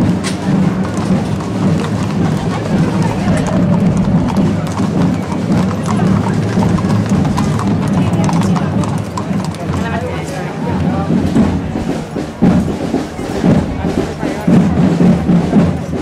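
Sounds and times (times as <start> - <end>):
crowd chatter: 0.0 - 16.0
horse hooves clip-clopping on stone: 0.0 - 16.0.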